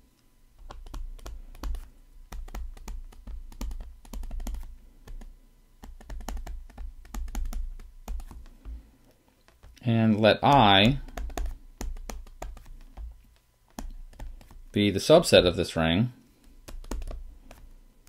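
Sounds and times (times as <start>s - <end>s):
stylus tapping on screen: 0.6s - 8.8s, 9.4s - 15.5s, 16.4s - 17.8s.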